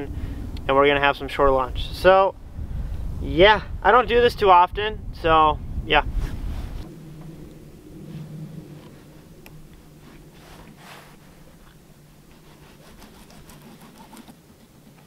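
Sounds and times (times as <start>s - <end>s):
faint low hum: 0.0s - 15.0s
knife scraping on cutting board: 12.3s - 14.4s.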